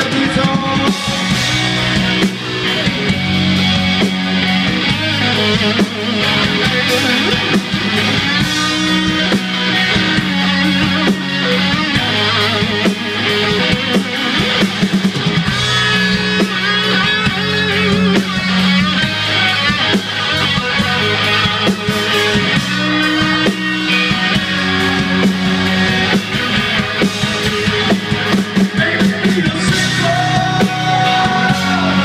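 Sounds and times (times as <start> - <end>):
drum kit: 0.0 - 32.0
electric guitars: 0.0 - 32.0.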